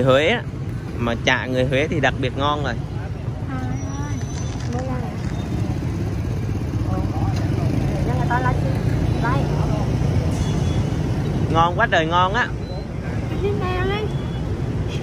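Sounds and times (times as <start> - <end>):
faint voices of passers-by: 0.0 - 15.0
traffic engine drone: 0.0 - 15.0.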